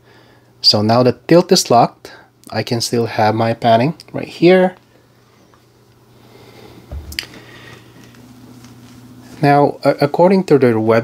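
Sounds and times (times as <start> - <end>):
soft thump of tripod head: 6.9 - 7.3.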